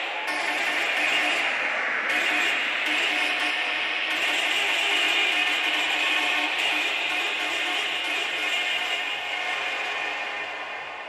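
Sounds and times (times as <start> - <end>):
electronic techno over sound system: 0.0 - 10.9.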